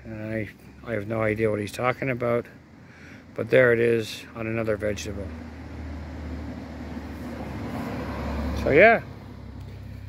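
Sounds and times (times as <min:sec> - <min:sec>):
vehicle engine running: 0:04.4 - 0:10.0.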